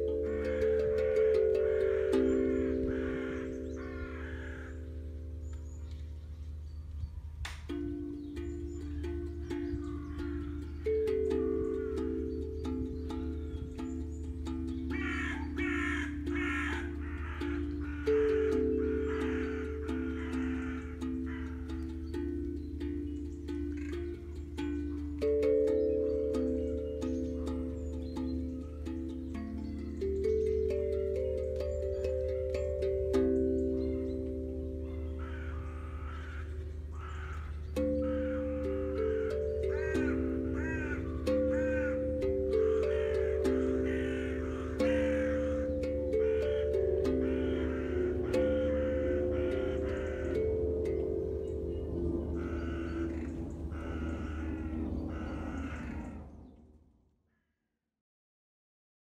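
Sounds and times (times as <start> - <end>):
crows cawing: 0.0 - 5.2, 14.9 - 22.2, 23.6 - 25.2, 34.7 - 56.6
aquadrum ringing notes: 0.0 - 56.2
low steady hum: 0.0 - 56.8.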